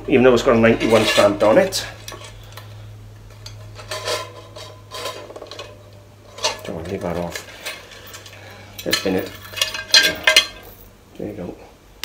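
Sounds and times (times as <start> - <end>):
low steady hum: 0.0 - 12.0
ceramic plate clinks and scrapes: 0.8 - 2.4, 3.4 - 10.8.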